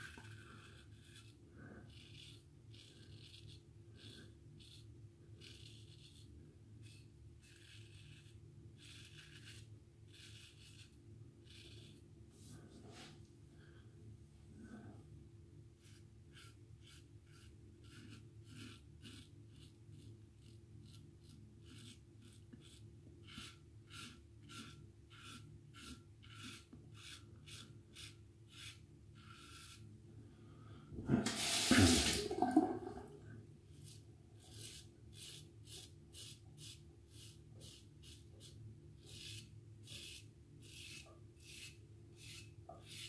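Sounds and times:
razor scraping stubble: 5.4 - 12.0, 15.8 - 29.8
tap water running: 31.0 - 33.2.

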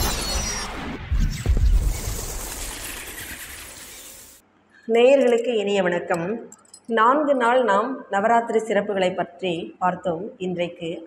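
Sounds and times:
woman speaking: 4.9 - 11.0.

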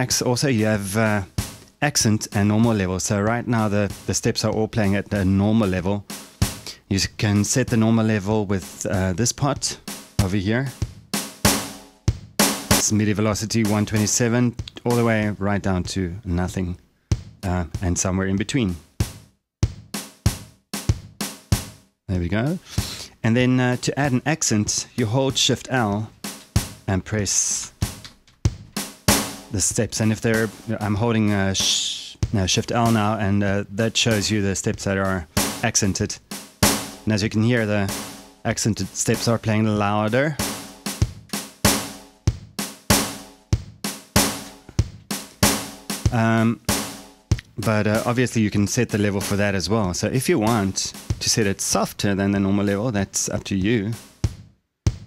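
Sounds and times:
drum machine kick and snare: 0.0 - 55.0.

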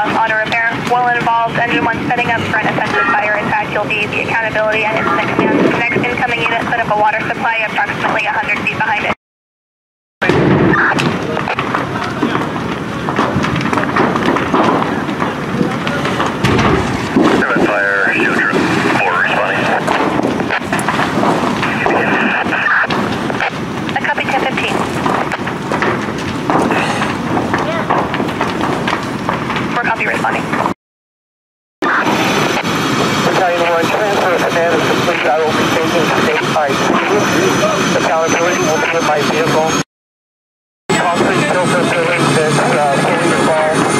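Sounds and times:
building fire crackling and popping: 0.0 - 9.2, 10.2 - 30.8, 31.9 - 39.7, 41.0 - 43.9
person speaking: 17.4 - 19.9.

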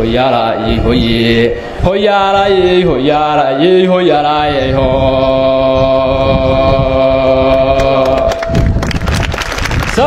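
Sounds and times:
crowd clapping: 7.8 - 10.0.

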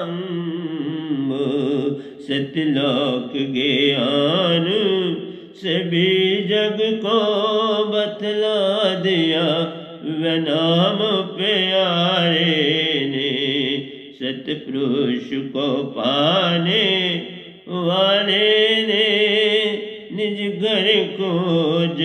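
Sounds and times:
man singing into microphone: 0.0 - 22.0.

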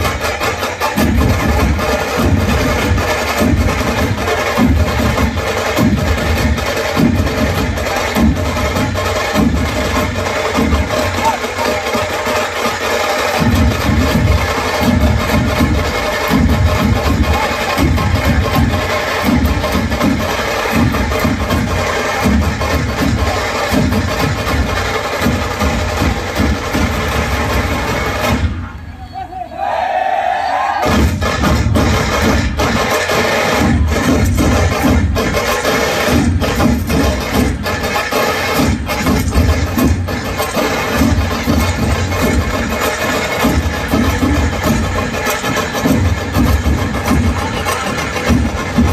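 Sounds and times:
barrel drums beating: 0.0 - 28.6, 30.8 - 48.9.

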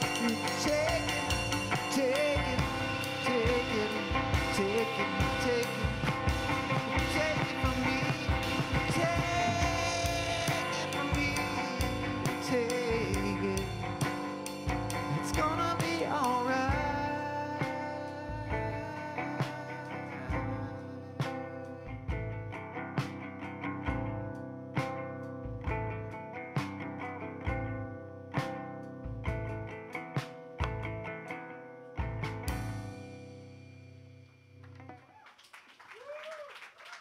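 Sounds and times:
man singing: 0.0 - 22.3.

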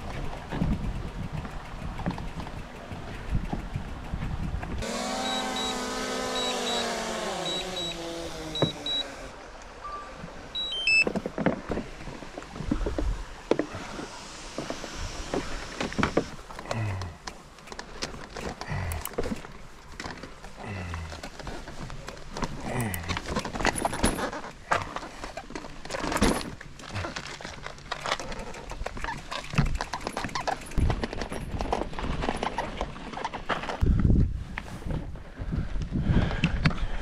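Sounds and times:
bicycle rattling on rough path: 0.0 - 9.2, 11.1 - 37.0
clicks and knocks from bicycle: 15.3 - 20.6, 21.2 - 33.8.

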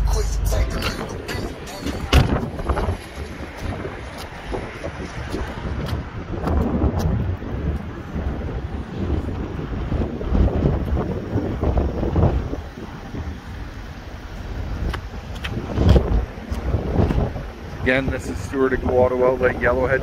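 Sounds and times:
wind buffeting microphone: 0.5 - 20.0.

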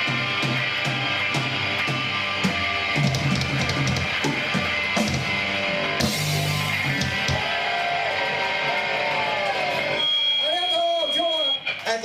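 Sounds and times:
bass guitar: 0.0 - 10.0
drum kit: 0.0 - 10.1
distorted electric guitar: 0.0 - 10.4.

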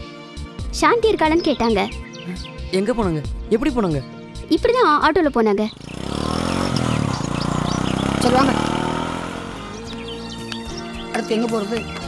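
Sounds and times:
background music: 0.0 - 12.0
auto-rickshaw engine running: 5.5 - 11.0.

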